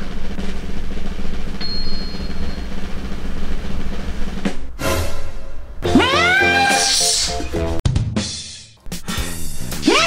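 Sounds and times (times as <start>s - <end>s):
background music: 4.6s - 10.0s
high-pitched whining cry: 5.9s - 7.4s.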